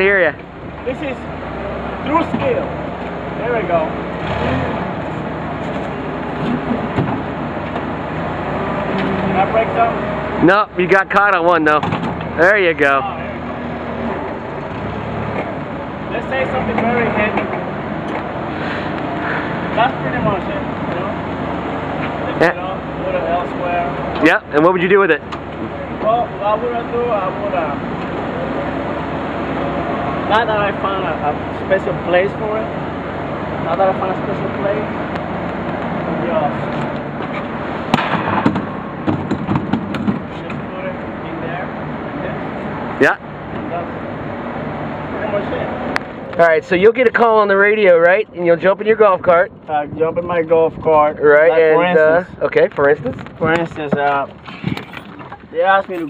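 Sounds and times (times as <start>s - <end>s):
forklift engine running: 0.0s - 46.4s.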